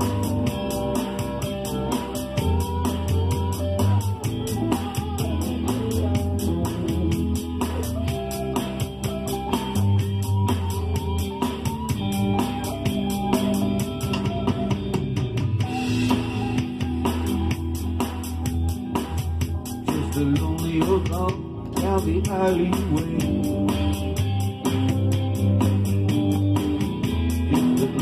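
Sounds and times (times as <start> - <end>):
guitars picking a melody: 0.0 - 28.0
low bass notes: 0.0 - 28.0.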